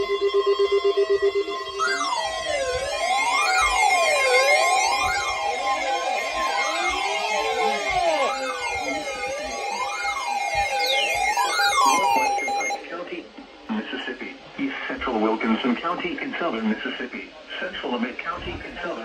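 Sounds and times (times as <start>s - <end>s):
steady alert tones: 0.0s - 12.8s
sweeping siren tone: 0.0s - 12.8s.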